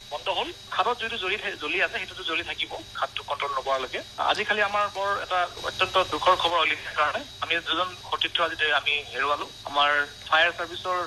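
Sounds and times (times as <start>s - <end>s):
radio news speech: 0.1s - 11.0s.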